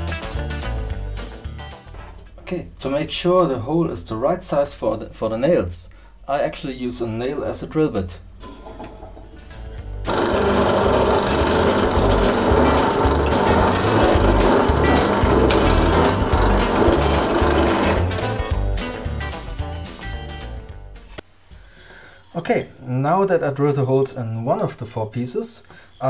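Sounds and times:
drill press running: 10.1s - 18.7s.

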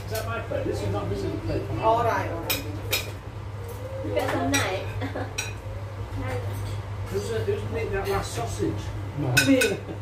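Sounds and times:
cutlery and plates clinking: 2.5s - 3.2s, 6.4s - 8.6s, 9.3s - 10.0s.

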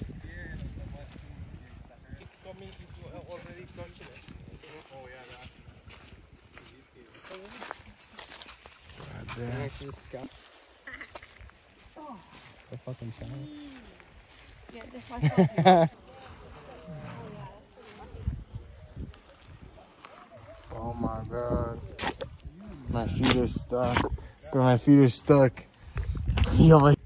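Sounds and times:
people talking and exclaiming: 11.9s - 25.1s.

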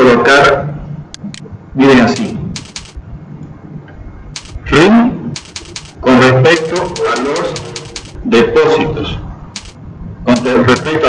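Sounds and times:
keyboard key clicks: 1.2s - 1.4s, 2.2s - 3.0s, 4.4s - 4.7s, 5.4s - 8.2s, 9.6s - 11.0s
man's voice: 10.3s - 11.0s.

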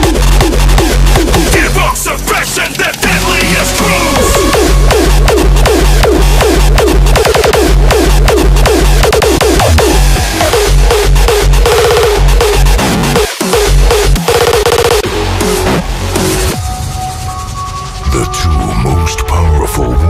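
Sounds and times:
distorted kick drum: 3.0s - 16.6s.

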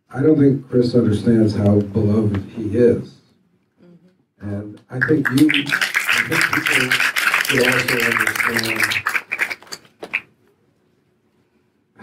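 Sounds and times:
man speaking through a microphone: 4.4s - 9.0s.

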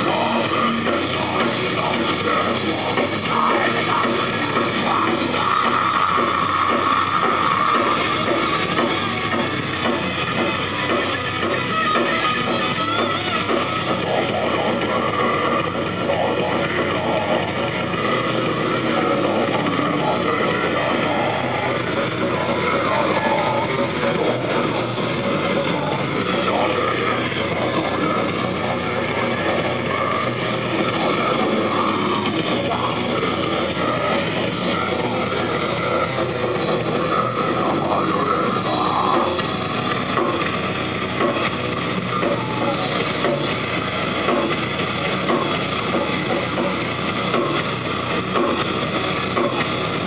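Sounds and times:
metal band playing live: 0.0s - 50.0s.

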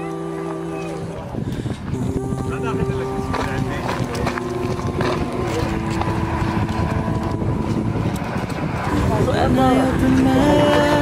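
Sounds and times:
steady low rumble: 0.3s - 11.0s.

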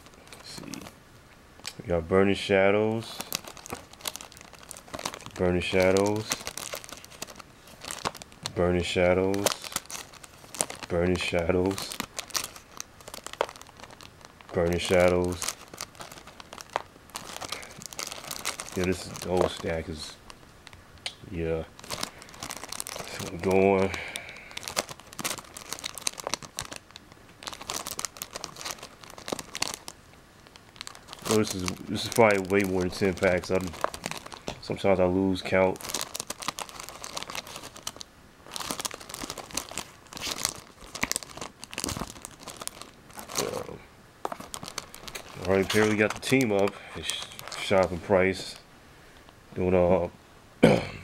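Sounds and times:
plastic card packs crinkling: 0.0s - 1.0s, 1.6s - 48.7s.

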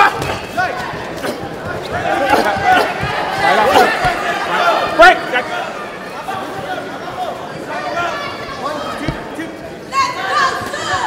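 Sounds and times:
ringside voices shouting: 0.0s - 9.1s
arena crowd noise: 0.0s - 11.0s.

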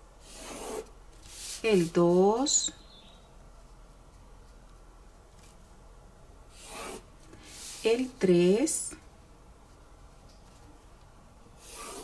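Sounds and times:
pen and ruler rubbing on paper: 0.2s - 2.1s, 6.5s - 8.0s, 11.6s - 12.0s.

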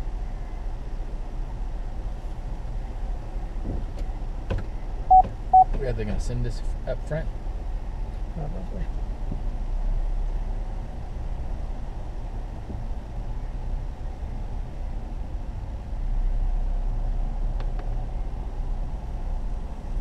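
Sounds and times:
car engine rumble inside cabin: 0.0s - 20.0s.

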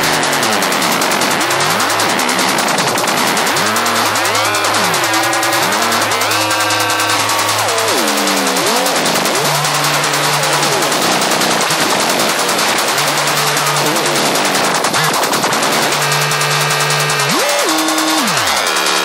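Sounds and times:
gliding synth lines: 0.0s - 19.0s
rapid percussive hits: 0.0s - 19.0s.

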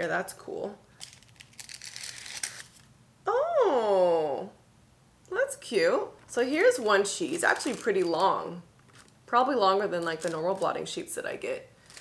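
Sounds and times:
paper sheet crinkling: 1.0s - 2.9s, 7.2s - 9.2s, 9.9s - 11.0s, 11.8s - 12.0s.

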